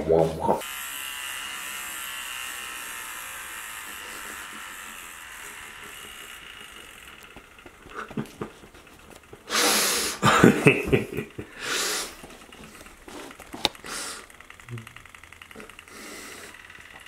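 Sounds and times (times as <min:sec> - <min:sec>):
electric shaver buzzing: 0:00.0 - 0:17.0.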